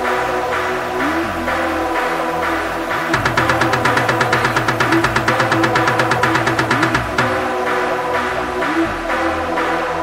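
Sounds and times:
electronic dance music drum roll: 0:03.1 - 0:08.0.

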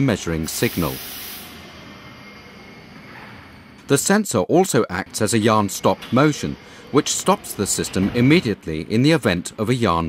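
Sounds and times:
faint high whine: 0:00.0 - 0:10.0
machine hissing: 0:00.2 - 0:03.6, 0:05.2 - 0:08.5.

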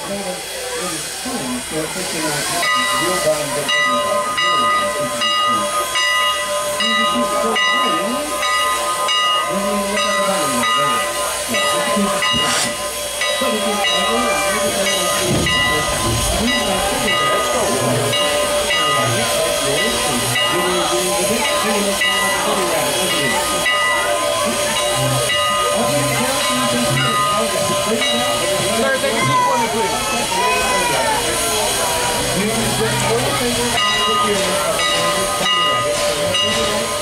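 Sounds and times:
steam hissing: 0:00.0 - 0:37.0.

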